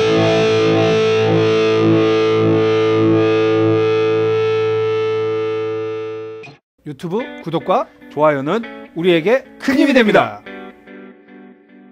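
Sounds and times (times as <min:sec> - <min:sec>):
overdriven electric guitar: 0:00.0 - 0:06.6, 0:07.2 - 0:11.9.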